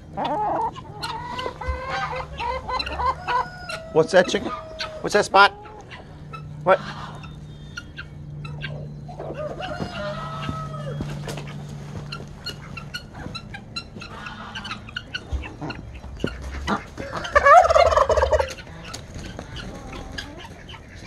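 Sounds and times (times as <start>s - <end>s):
turkey gobbling: 0.0s - 21.0s.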